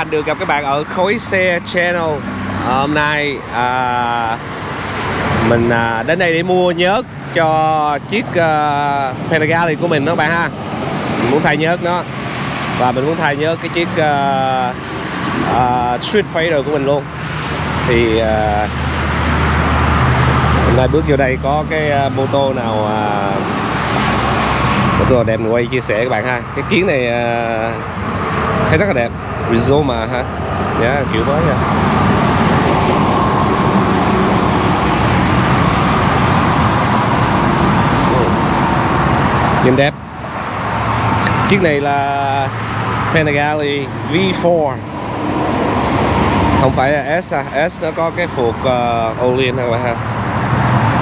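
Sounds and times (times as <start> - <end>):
road traffic noise: 0.0 - 51.0.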